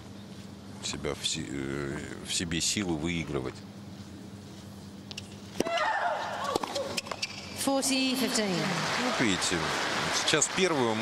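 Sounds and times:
crowd applause: 8.3 - 11.0.

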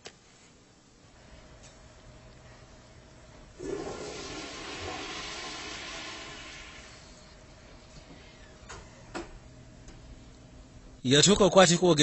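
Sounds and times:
toilet flushing: 3.6 - 7.3.

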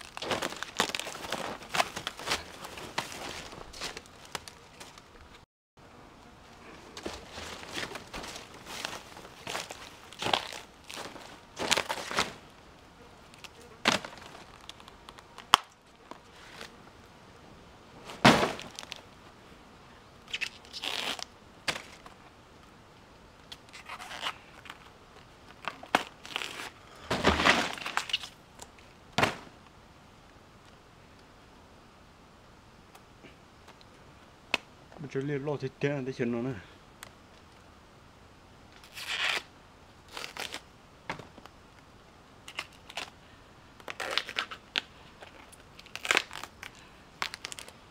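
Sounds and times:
bracts crackling and tearing: 0.0 - 5.3, 6.8 - 12.5, 13.3 - 16.8, 18.1 - 19.0, 20.3 - 22.2, 23.5 - 24.9, 25.5 - 29.4, 38.7 - 39.5, 40.1 - 41.5, 42.4 - 43.2, 43.8 - 47.8.

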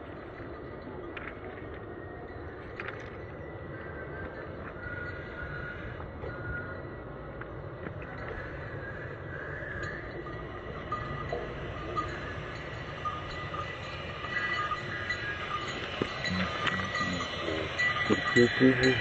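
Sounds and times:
train rumbling along track: 0.0 - 19.0
metallic clinks of animal bell: 6.3 - 19.0.

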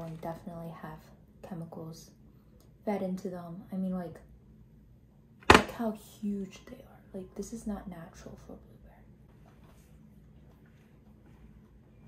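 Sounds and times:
woman speaking: 0.0 - 2.2, 2.8 - 4.3, 5.5 - 9.1.

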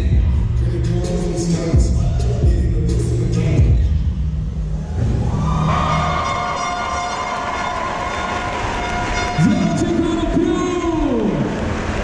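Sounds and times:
horn-like electronic chord: 5.7 - 10.3.

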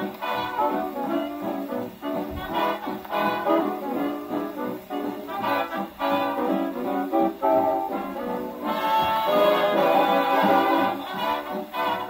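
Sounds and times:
swing band brass on gramophone: 0.0 - 12.0.

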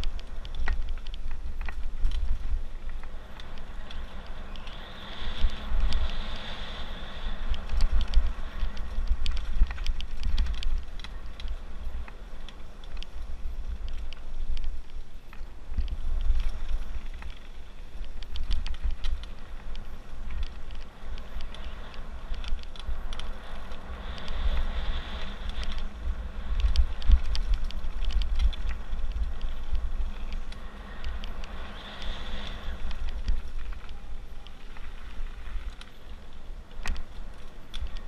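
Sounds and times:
bike rattling and clicking: 0.0 - 38.0
bike tyres on gravel: 0.0 - 38.0
wind buffeting microphone: 0.0 - 38.0.

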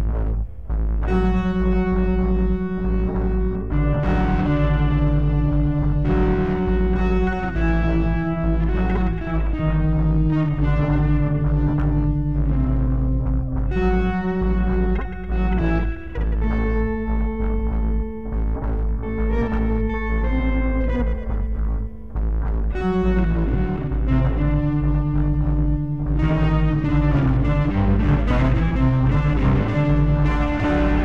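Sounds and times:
slow blues electric guitar: 0.0 - 31.0
deep low drone: 15.9 - 31.0.

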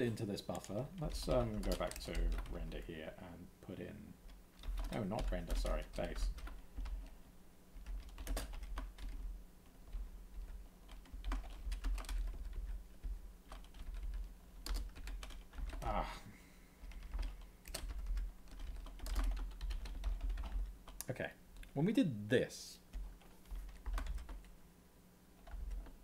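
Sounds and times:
typing on computer keyboard: 1.3 - 2.7, 4.6 - 7.1, 7.8 - 9.3, 9.9 - 15.9, 16.8 - 21.1, 22.9 - 24.5, 25.4 - 26.0
person making brief vocal sound: 15.8 - 16.4.

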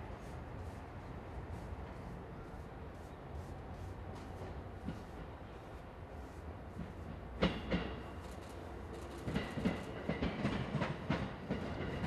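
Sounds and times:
train rumbling: 0.0 - 12.0
train wheels clacking on joints: 4.1 - 5.7, 6.7 - 12.0.

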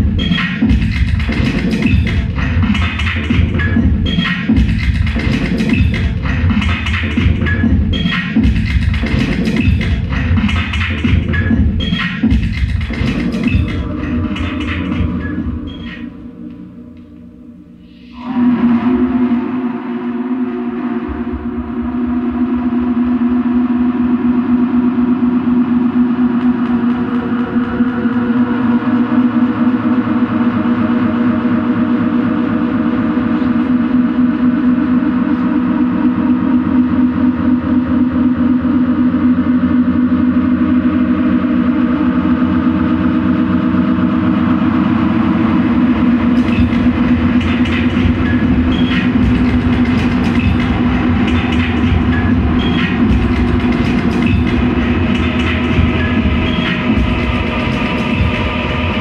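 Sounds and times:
droning loop with rattling pulse: 0.0 - 59.0.

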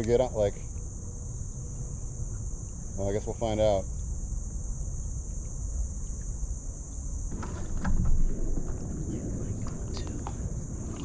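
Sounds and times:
insects chirping: 0.0 - 11.0
low rumble: 7.3 - 11.0.

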